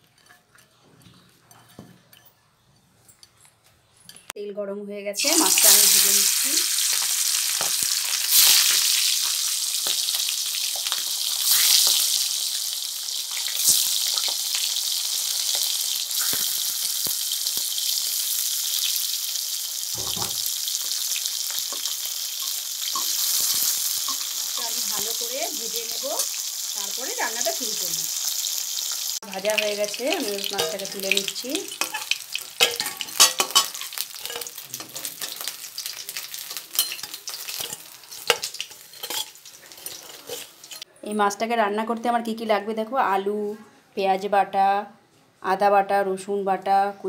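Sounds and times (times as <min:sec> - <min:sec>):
fish frying in hot oil: 0:05.2 - 0:40.8.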